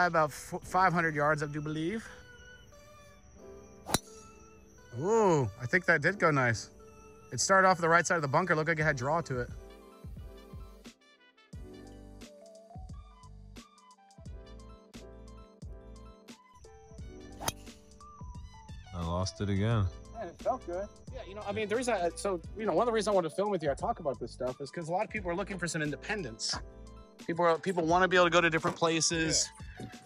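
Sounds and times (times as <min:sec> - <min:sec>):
faint background music: 0:00.0 - 0:30.0
golf driver striking ball: 0:03.9 - 0:04.2, 0:17.4 - 0:17.7.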